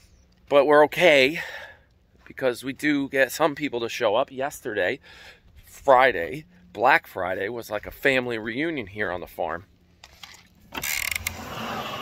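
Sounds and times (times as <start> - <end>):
slurping drink through straw: 10.9 - 12.0.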